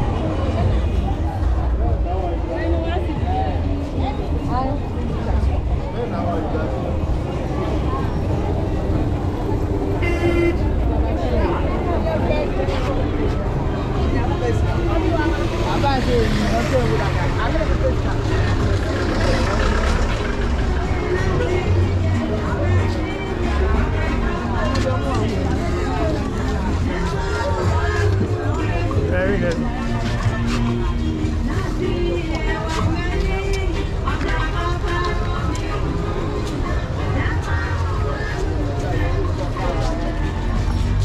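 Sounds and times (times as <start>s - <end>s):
low hum of vehicle engines: 0.0s - 41.0s
low rumble of traffic: 0.0s - 41.0s
many voices talking and calling: 0.0s - 41.0s.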